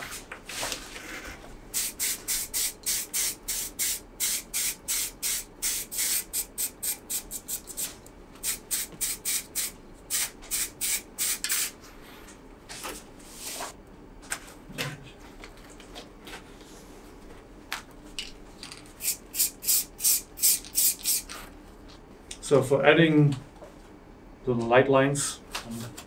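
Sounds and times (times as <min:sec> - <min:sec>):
spray paint can hissing: 0:01.8 - 0:11.8, 0:19.0 - 0:21.4.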